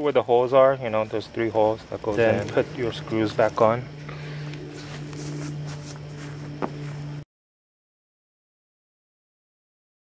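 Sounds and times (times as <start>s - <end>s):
steady low hum: 0.0s - 7.3s
plastic and paper rustling: 4.7s - 7.0s.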